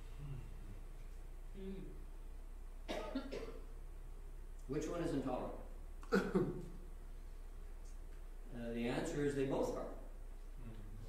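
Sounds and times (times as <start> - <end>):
man coughing: 2.9 - 3.6, 6.0 - 6.7.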